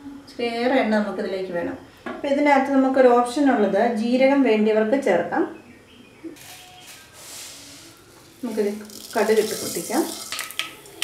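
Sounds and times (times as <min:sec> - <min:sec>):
hot oil hissing in wok: 0:08.4 - 0:11.0.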